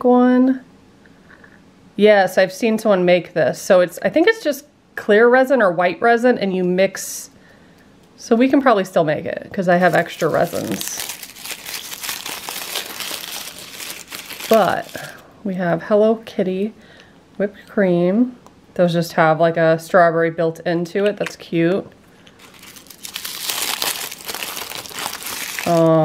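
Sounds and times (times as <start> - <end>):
crinkly wrapper rustling: 9.7 - 15.2, 22.2 - 26.0.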